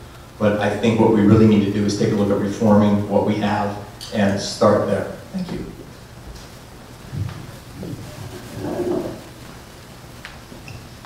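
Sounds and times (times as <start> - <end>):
microphone handling bumps and rustles: 5.5 - 10.6.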